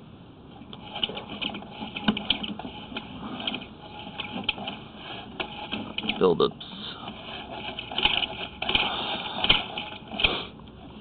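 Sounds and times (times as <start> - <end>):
camera cable rattling and clicking: 0.7 - 6.3, 7.1 - 10.3.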